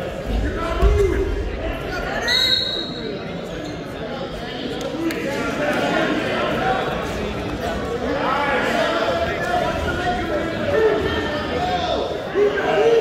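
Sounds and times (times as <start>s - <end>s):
voices calling out in echoing gym: 0.0s - 13.0s.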